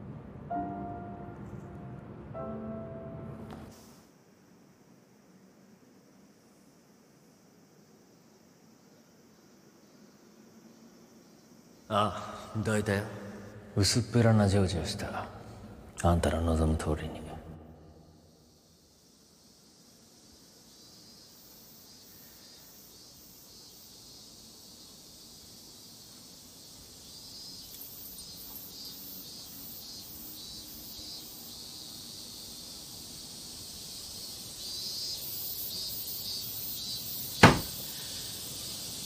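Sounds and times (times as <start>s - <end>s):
high-pitched insect drone: 18.0s - 39.0s.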